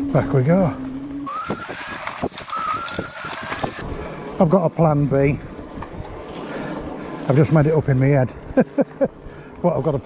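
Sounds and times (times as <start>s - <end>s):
electric bike motor whining: 0.0s - 4.4s
tyre noise on dirt: 1.2s - 4.0s
wind rushing: 1.2s - 4.4s.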